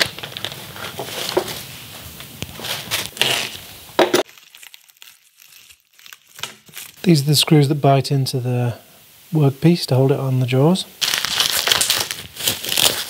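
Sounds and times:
bubble wrap crinkling: 0.0 - 7.7, 11.0 - 13.0.

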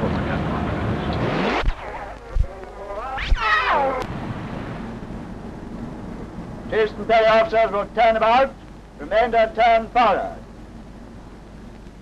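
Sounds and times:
recording hiss: 0.0 - 12.0
low rumble: 0.1 - 6.8.

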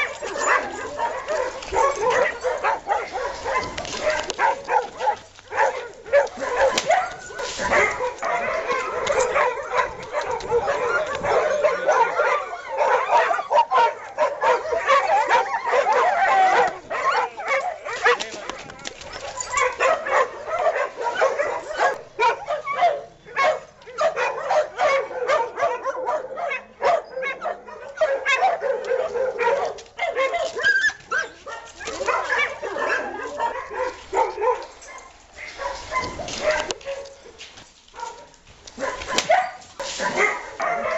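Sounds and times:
dogs fighting barking and yelping: 0.0 - 40.9.

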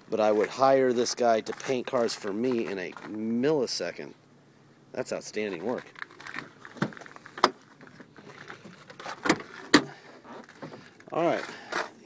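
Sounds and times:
faint handling noise: 0.1 - 4.0, 5.1 - 12.0.

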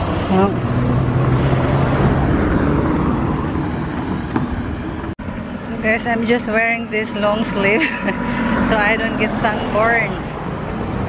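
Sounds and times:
vehicle passing by: 0.0 - 11.0.

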